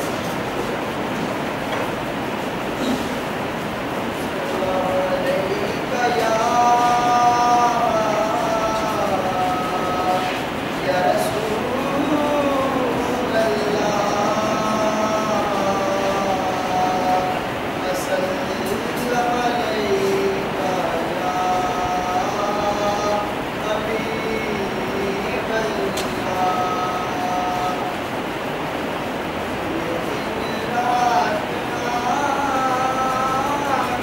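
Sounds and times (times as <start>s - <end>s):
steady rushing noise: 0.0s - 34.0s
boy chanting devotional poem: 4.4s - 28.1s, 29.6s - 34.0s.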